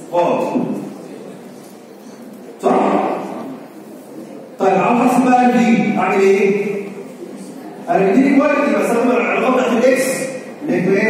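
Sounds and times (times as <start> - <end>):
man's voice through microphone: 0.0 - 1.4, 2.5 - 11.0.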